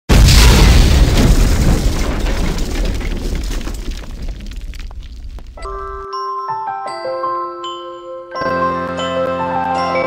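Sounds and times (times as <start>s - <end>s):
deep boom with rumble: 0.1s - 5.6s.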